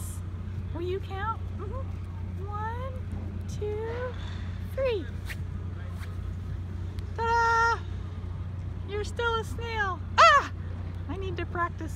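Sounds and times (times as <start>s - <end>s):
low outdoor rumble: 0.0s - 11.9s
faint short rustles: 4.0s - 6.5s.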